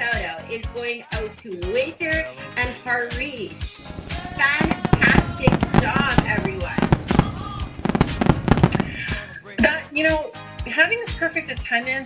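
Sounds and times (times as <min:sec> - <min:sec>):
background music: 0:00.0 - 0:12.0
fireworks popping and banging: 0:03.8 - 0:09.2.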